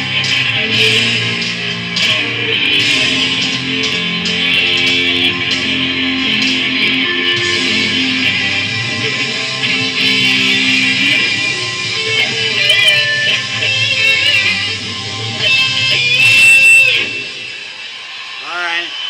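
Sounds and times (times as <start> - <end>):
electric guitar lead with bent notes: 0.0 - 18.6.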